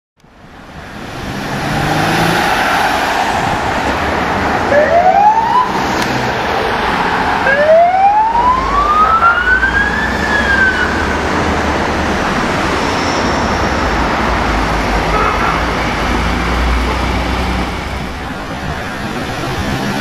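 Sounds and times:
cars passing: 0.2s - 20.0s
police siren wail: 1.9s - 11.4s.

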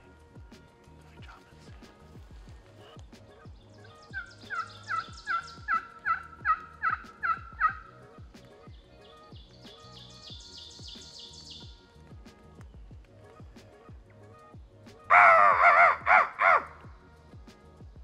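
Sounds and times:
background music with steady beat: 0.0s - 18.0s
turkey yelps: 3.8s - 8.0s, 15.1s - 16.8s.

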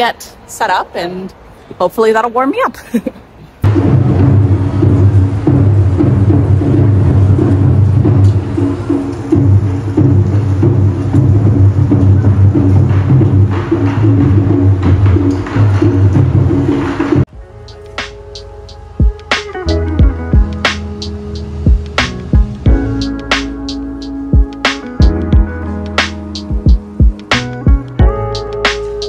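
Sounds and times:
taiko drums playing: 3.6s - 17.3s, 19.0s - 28.8s.

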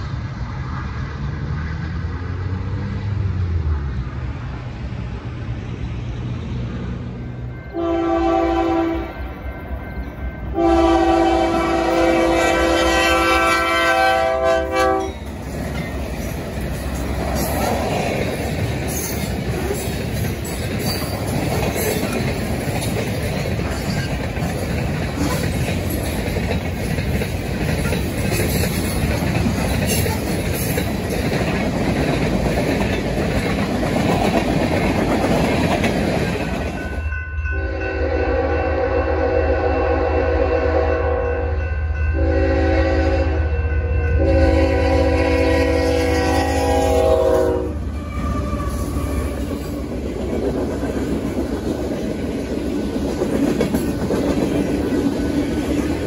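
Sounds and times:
freight train rumbling on rails: 0.0s - 56.0s
locomotive engine hum: 0.0s - 56.0s
locomotive air horn blasts: 7.7s - 9.3s, 10.5s - 15.2s, 37.6s - 49.6s
train cars clattering: 7.7s - 37.7s, 44.6s - 56.0s.

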